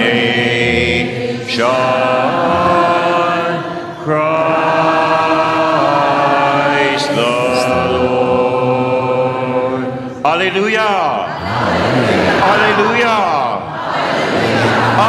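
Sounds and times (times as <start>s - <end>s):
voices chanting sung refrain: 0.0s - 15.0s.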